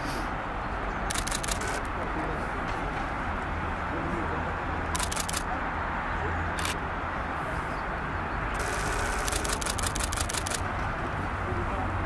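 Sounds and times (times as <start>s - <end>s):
camera shutter clicks: 1.1s - 1.9s, 5.0s - 5.5s, 6.6s - 6.8s, 8.6s - 10.6s.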